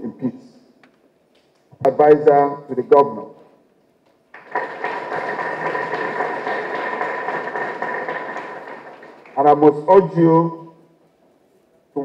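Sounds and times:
hall room noise: 0.0 - 12.0.

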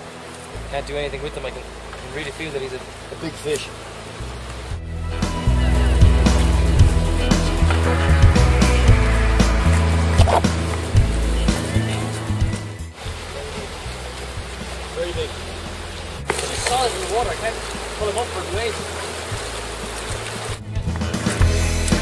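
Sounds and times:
music with heavy bass and beat: 4.8 - 13.0, 20.6 - 22.0.

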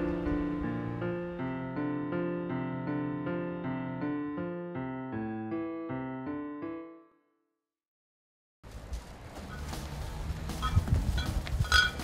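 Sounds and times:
high-pitched clinks: 10.6 - 12.0.

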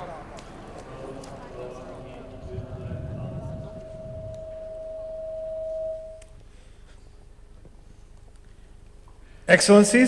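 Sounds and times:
low rumble: 0.0 - 6.5
microphone feedback tone: 1.7 - 6.4.

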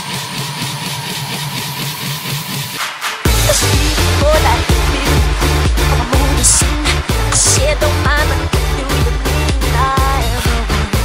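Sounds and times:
throbbing bass note: 3.3 - 11.0.

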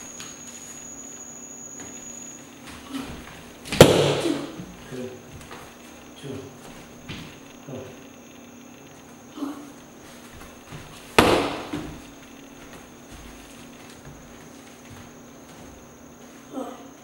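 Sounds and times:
kick striking kick pad: 3.7 - 4.4, 11.2 - 12.0.

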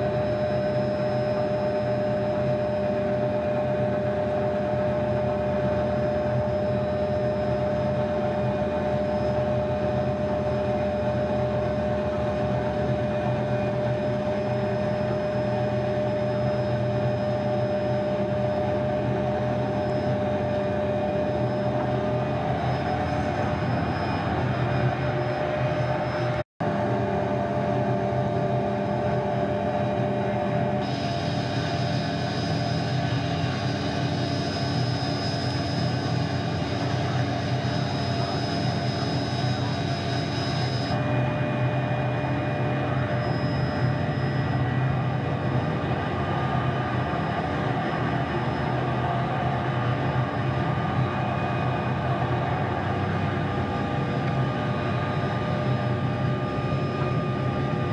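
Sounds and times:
constant high tone: 0.0 - 26.5, 27.6 - 57.9
helicopter engine and rotor drone: 0.0 - 57.9.

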